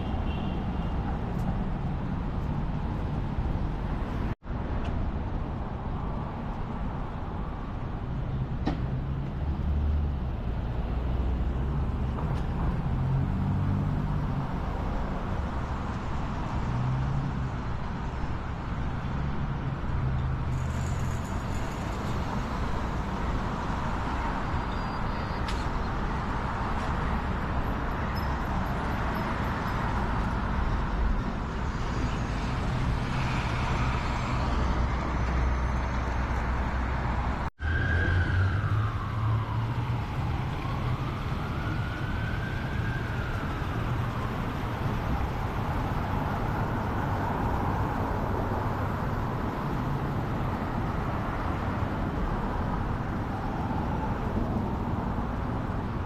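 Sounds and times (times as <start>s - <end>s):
road traffic rumble: 0.0s - 56.0s
siren wailing: 37.6s - 45.7s.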